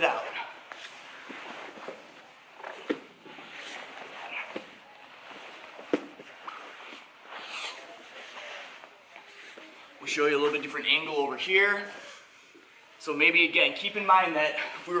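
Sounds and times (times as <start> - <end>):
fabric rustling and scuffing: 0.1 - 11.0.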